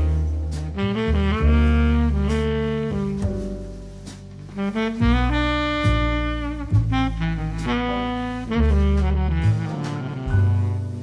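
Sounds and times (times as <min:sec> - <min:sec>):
bass line: 0:00.0 - 0:11.0
held jazz melody notes: 0:00.0 - 0:11.0.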